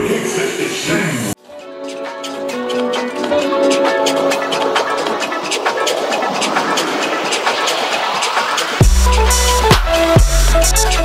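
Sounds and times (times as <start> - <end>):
sharp hi-hat ticks: 1.6 - 11.0
noisy riser sweeping upward: 2.2 - 11.0.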